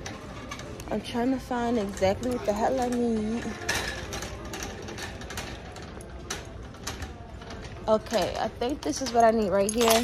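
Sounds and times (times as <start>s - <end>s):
light clicks and rattles: 0.0s - 10.0s
store background hum: 0.0s - 10.0s.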